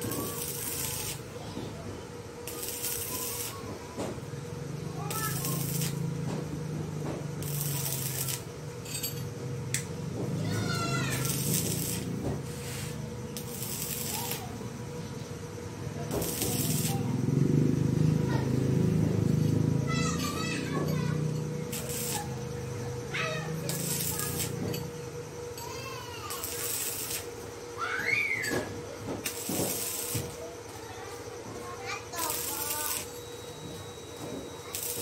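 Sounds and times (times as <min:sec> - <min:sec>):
welding arc crackling and hissing: 0:00.0 - 0:08.7, 0:09.6 - 0:35.0
steady hum: 0:00.0 - 0:35.0.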